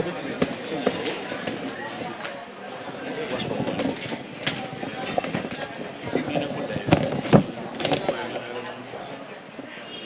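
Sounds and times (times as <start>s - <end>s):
people talking indistinctly: 0.0s - 10.0s.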